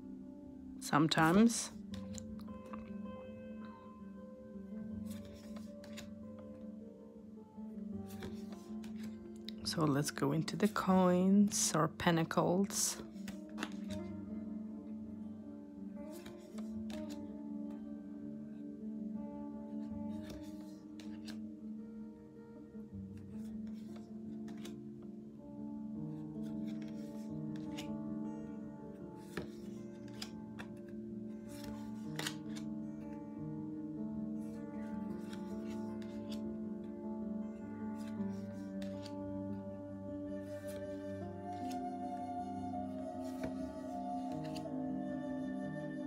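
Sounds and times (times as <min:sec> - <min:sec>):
soft background music: 0:00.0 - 0:46.0
cards clicking being flipped: 0:01.9 - 0:02.9, 0:05.1 - 0:06.1, 0:08.1 - 0:09.6, 0:13.0 - 0:14.1, 0:16.1 - 0:17.2, 0:20.1 - 0:21.4, 0:23.4 - 0:24.8, 0:26.4 - 0:27.9, 0:29.2 - 0:30.9, 0:31.5 - 0:32.7, 0:35.1 - 0:36.4, 0:38.0 - 0:39.2, 0:41.5 - 0:41.8, 0:44.3 - 0:44.6.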